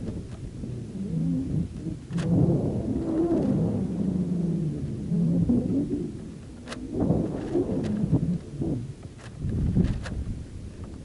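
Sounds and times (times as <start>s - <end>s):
uneven low rumbling: 0.0s - 11.0s.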